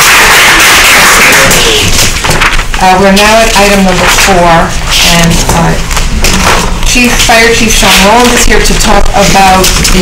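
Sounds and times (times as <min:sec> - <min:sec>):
audience applauding: 0:00.0 - 0:02.2.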